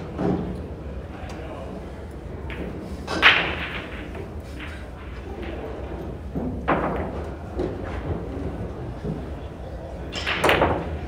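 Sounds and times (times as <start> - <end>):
pool balls clicking: 2.4 - 9.4, 10.1 - 11.0
cue striking pool ball: 2.5 - 7.8.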